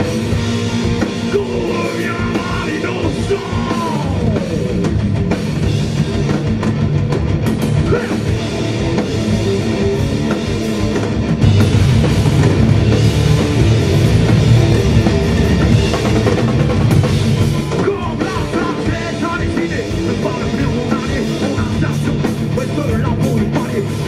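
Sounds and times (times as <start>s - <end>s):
heavy rock band playing live: 0.0s - 24.0s.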